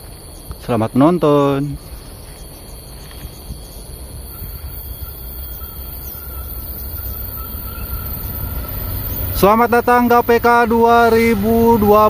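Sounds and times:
faint thin whine: 0.0s - 12.0s
train rumble: 0.0s - 12.0s.

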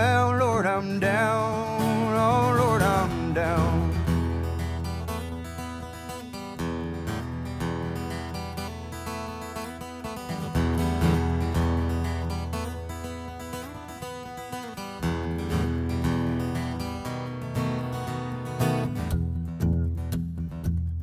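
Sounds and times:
acoustic guitar strumming: 0.0s - 21.0s.

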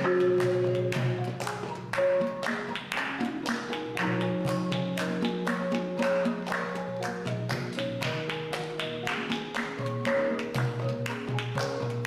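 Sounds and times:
gamelan ensemble playing: 0.0s - 12.0s.

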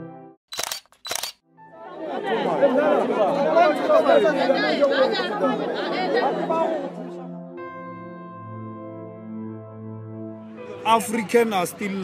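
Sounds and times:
overlapping chatter: 1.8s - 7.6s.

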